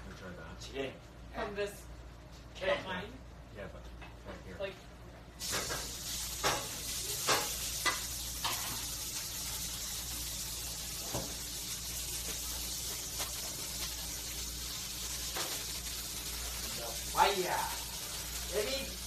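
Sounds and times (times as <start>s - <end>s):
knocks of pan or utensils: 5.4s - 8.8s
food sizzling in frying pan: 5.4s - 19.0s.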